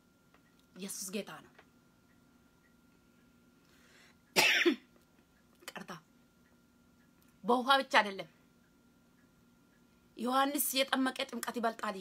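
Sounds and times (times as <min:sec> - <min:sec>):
faint breath: 0:03.6 - 0:04.2
person coughing: 0:04.4 - 0:04.9.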